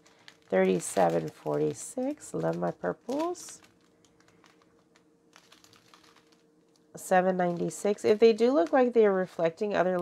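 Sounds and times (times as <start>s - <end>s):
faint steady hum: 0.0s - 10.0s
plastic bags clicking: 0.0s - 10.0s.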